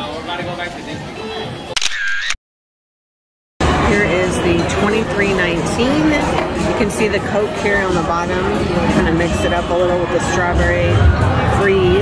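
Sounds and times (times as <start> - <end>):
background music: 3.6 - 12.0.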